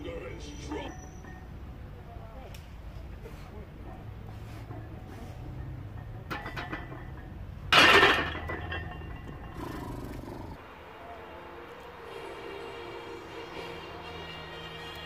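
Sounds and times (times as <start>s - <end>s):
barbell clanging on rack: 5.6s - 9.7s.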